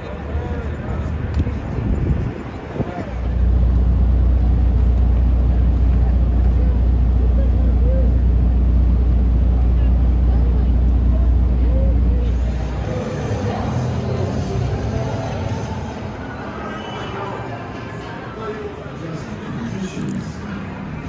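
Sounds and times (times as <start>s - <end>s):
steady low rumble: 0.1s - 16.4s
faint distant voices: 4.4s - 21.0s.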